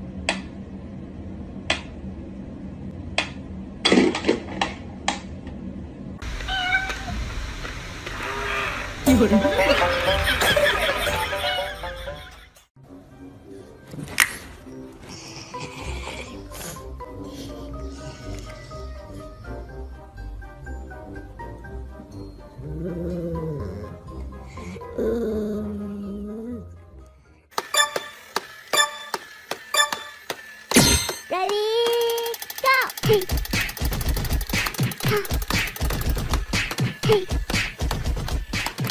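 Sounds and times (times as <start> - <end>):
cat meowing: 6.5 - 7.2.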